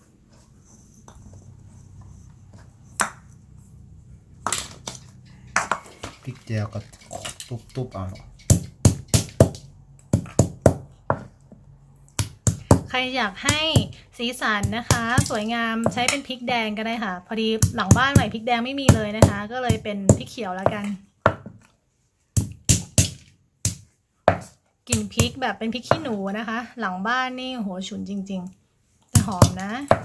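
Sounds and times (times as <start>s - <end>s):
pestle thudding on wooden board: 4.4s - 6.2s, 8.2s - 11.6s, 12.2s - 16.2s, 17.6s - 21.6s, 22.3s - 26.2s, 29.2s - 30.0s.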